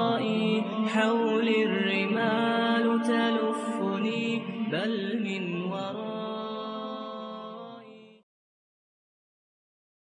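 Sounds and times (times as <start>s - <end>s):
voice chanting long notes: 0.0s - 8.1s.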